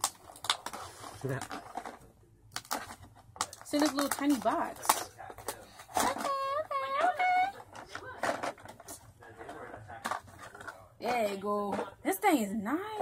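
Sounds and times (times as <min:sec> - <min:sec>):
plastic blister pack crinkling: 0:00.0 - 0:10.8.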